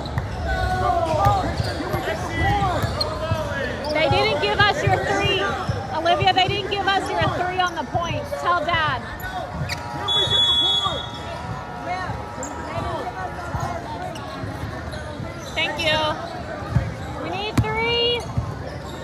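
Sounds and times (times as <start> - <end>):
voices of players and spectators: 0.0 - 19.0
sneakers squeaking on court: 1.1 - 6.5, 9.1 - 10.4, 12.4 - 19.0.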